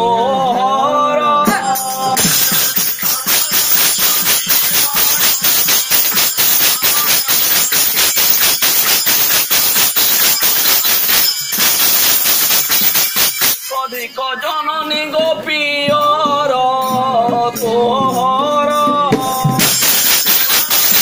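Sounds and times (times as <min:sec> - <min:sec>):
fast jingling percussion: 0:01.6 - 0:15.2, 0:16.8 - 0:21.0.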